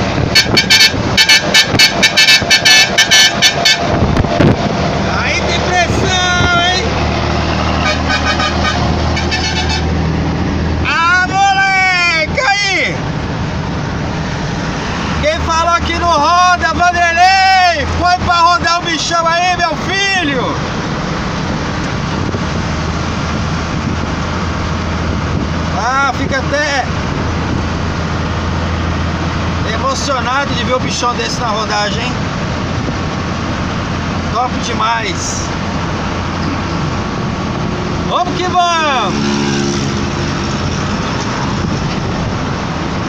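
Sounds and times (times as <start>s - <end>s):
road and wind noise: 0.0s - 43.0s
truck engine drone: 0.0s - 43.0s.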